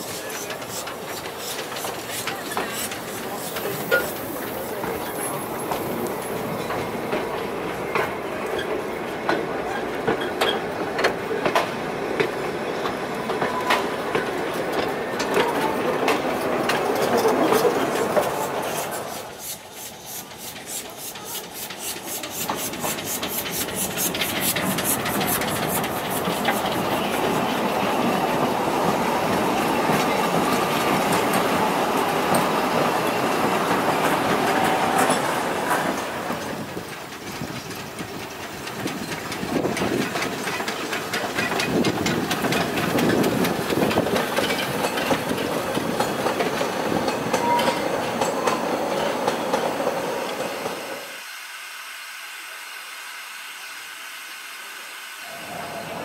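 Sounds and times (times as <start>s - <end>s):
train carriages clattering: 0.0s - 51.0s
steam hissing: 0.0s - 56.0s.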